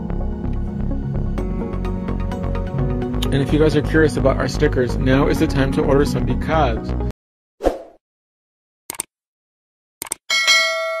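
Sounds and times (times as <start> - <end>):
bell chime: 10.3 - 11.0.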